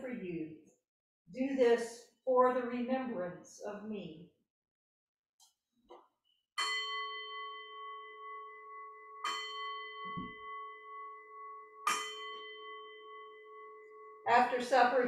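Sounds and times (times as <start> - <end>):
bell ringing: 6.6 - 14.3.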